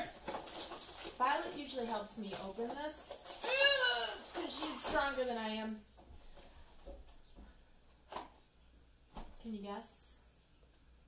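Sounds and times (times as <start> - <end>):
cardboard packaging rustling: 0.0 - 6.4.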